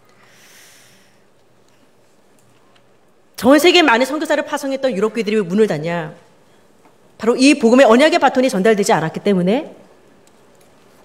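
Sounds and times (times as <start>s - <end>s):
breath into microphone: 0.1s - 1.3s.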